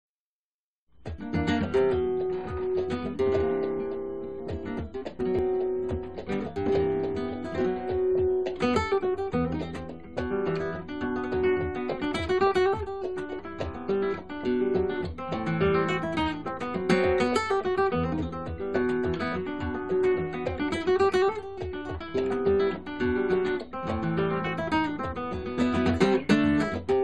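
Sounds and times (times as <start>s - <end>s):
flamenco guitar playing: 1.0s - 27.0s.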